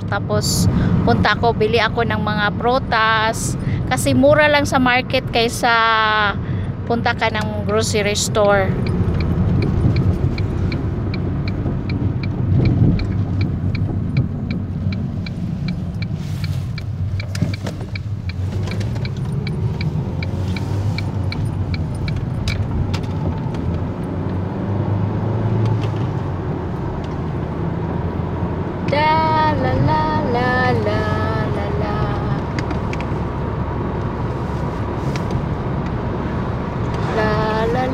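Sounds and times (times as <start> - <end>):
car engine and tyre rumble: 0.0 - 37.9
light regular ticking: 6.6 - 24.4.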